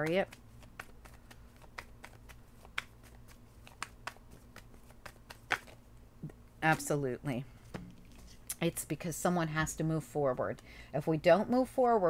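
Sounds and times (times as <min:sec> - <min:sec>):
cards shuffling clicks and taps: 0:00.0 - 0:05.8
low room hum: 0:00.0 - 0:12.0.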